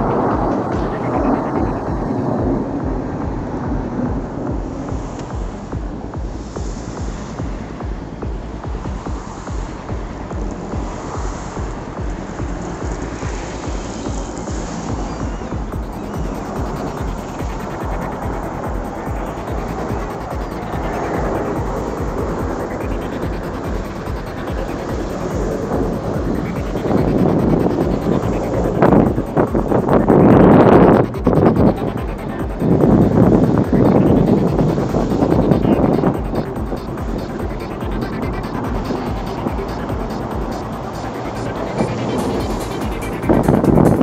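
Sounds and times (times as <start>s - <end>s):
jet aircraft rumble: 0.0s - 44.0s
wind buffeting microphone: 0.0s - 44.0s.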